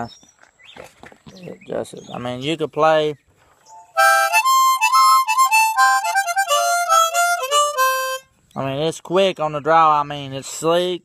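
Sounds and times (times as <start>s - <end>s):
harmonica riff: 3.8s - 8.4s.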